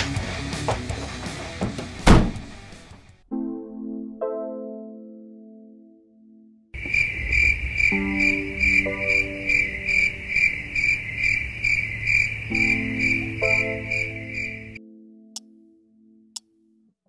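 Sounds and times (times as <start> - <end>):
crickets chirping: 6.8 - 14.8.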